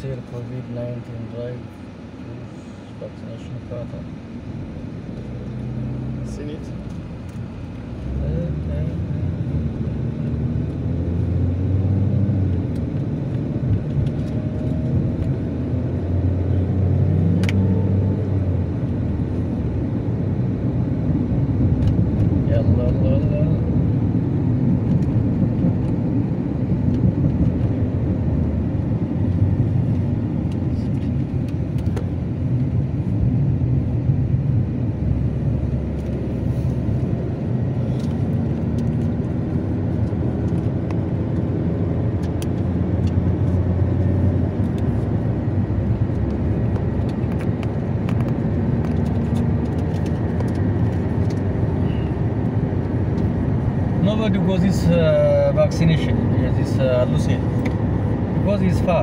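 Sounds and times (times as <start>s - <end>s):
car engine and tyres rumbling: 0.0s - 59.0s.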